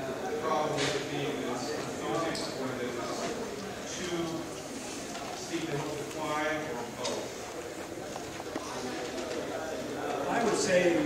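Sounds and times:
person talking in a hall: 0.0s - 11.0s.

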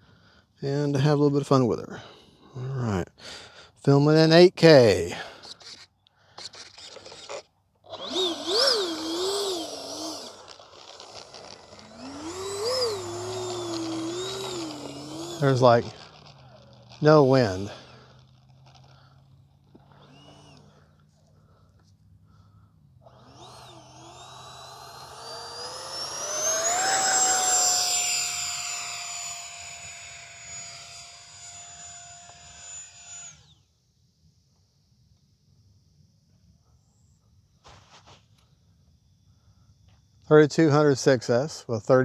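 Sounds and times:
electric ducted fan whine: 7.0s - 41.4s.

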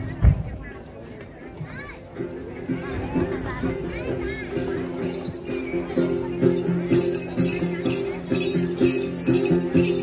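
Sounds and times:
children's voices: 0.0s - 10.0s
ritual performance music: 1.0s - 10.0s.

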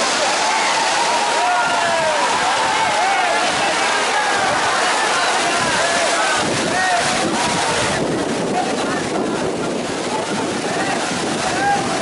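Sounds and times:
crowd chatter and calls: 0.0s - 12.0s
river water rushing over rocks: 0.0s - 12.0s.

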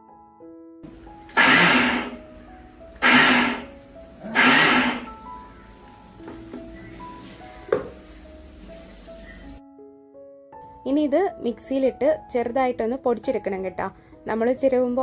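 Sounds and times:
electric mixer grinder grinding: 0.9s - 5.4s.

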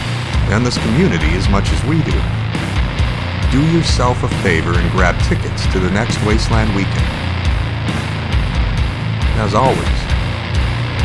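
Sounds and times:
rock music with steady beat: 0.0s - 11.0s.

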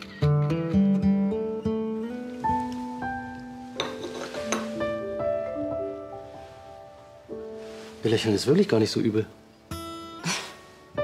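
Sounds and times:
acoustic guitar picking melody: 0.0s - 8.1s, 9.3s - 11.0s.

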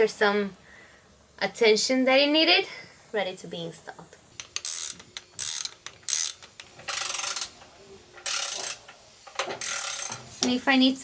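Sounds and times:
ratchet wrench clicking: 4.4s - 7.6s, 8.2s - 10.2s.

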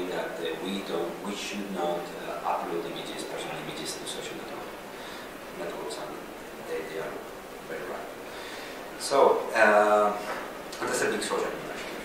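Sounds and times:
person speaking: 0.0s - 8.3s.

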